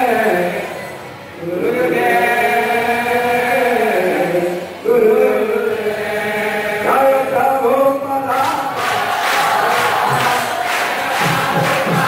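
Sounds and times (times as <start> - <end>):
voices chanting devotional song: 0.0 - 12.0.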